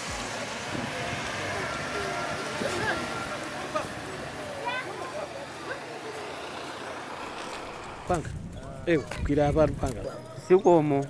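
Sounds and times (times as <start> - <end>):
roadside traffic noise: 0.0 - 11.0.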